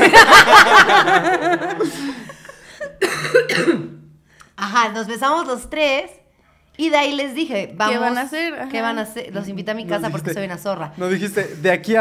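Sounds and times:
breathy cough-like vocal pulses: 2.9 - 4.1.

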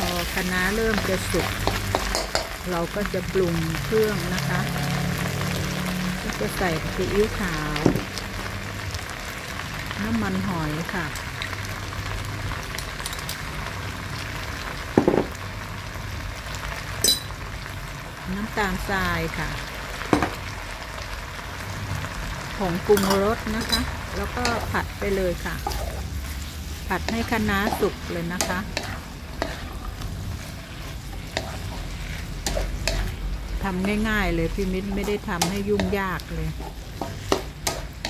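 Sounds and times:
food sizzling in a wok: 0.0 - 38.0.

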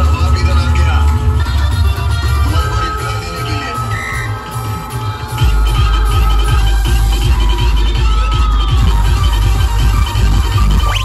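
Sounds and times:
deep sustained bass: 0.0 - 11.0
electronic dance music: 0.0 - 11.0.

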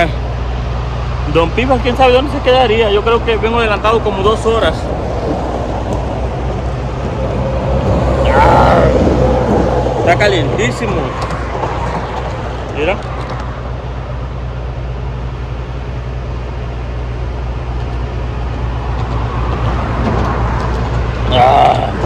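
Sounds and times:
highway traffic passing: 0.0 - 22.0
low engine hum: 0.0 - 22.0.

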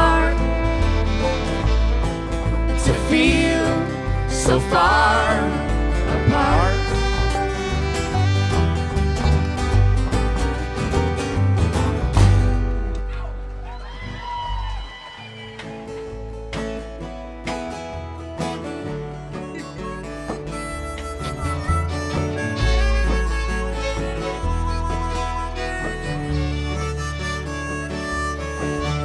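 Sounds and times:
strummed acoustic guitar: 0.0 - 13.6, 15.5 - 29.0
held lead melody: 0.0 - 14.0, 15.6 - 29.0
bass notes: 0.0 - 14.9, 15.7 - 29.0.

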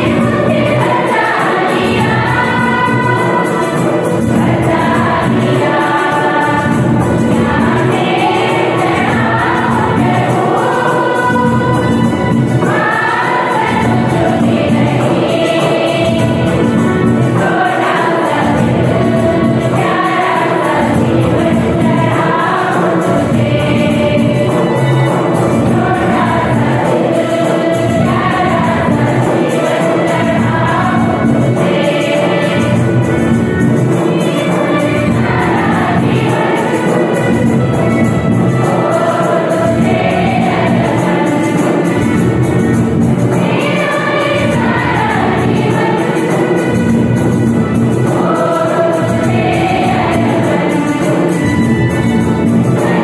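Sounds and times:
choir singing a hymn: 0.0 - 53.0.

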